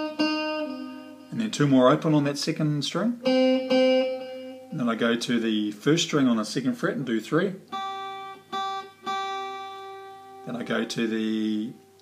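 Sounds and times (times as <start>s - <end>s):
acoustic guitar note plucked: 0.0s - 2.3s, 3.2s - 4.8s, 7.7s - 12.0s.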